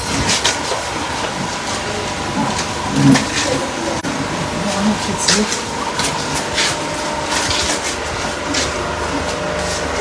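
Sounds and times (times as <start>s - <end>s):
steady background noise: 0.0s - 10.0s.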